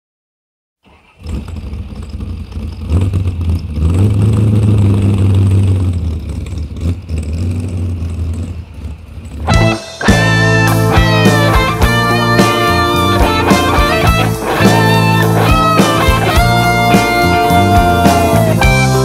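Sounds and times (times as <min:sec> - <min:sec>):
vehicle engine revving: 0:00.8 - 0:19.0
guitar music: 0:09.5 - 0:19.0.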